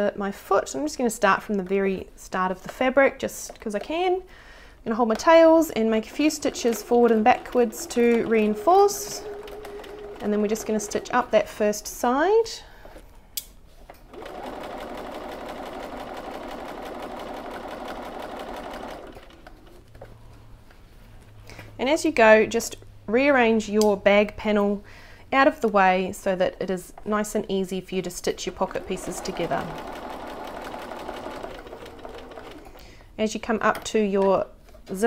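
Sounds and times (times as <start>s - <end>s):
sewing machine running: 6.0s - 11.5s, 14.1s - 19.8s, 28.4s - 32.8s.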